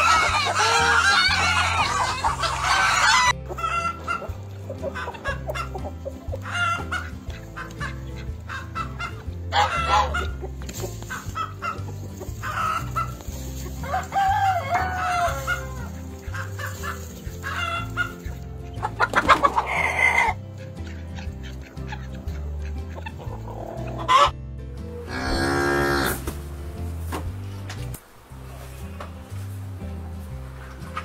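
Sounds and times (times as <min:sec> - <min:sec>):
hens clucking: 0:00.0 - 0:26.4, 0:27.5 - 0:31.0
rooster crowing: 0:13.9 - 0:15.6.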